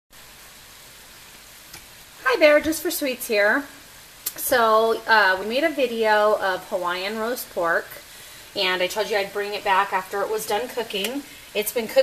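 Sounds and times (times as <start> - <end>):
microphone hiss: 0.1 - 12.0.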